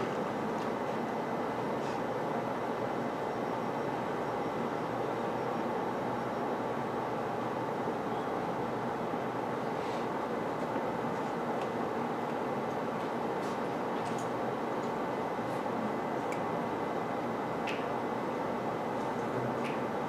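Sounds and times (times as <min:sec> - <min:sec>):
steady room hiss: 0:00.0 - 0:20.0.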